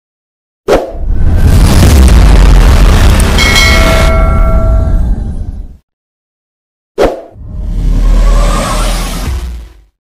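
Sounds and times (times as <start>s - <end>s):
rumbling whoosh: 0.9s - 5.8s
bright bell-like chime: 3.4s - 5.0s.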